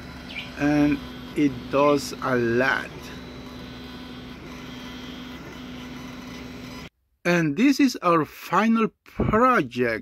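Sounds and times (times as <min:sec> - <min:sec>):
fan whirring: 0:00.0 - 0:06.9
low motor hum: 0:00.0 - 0:06.9.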